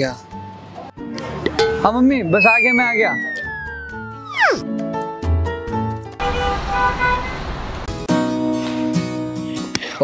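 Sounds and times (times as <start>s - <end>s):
background music: 0.0s - 6.2s
falling-pitch sound effect: 2.3s - 4.7s.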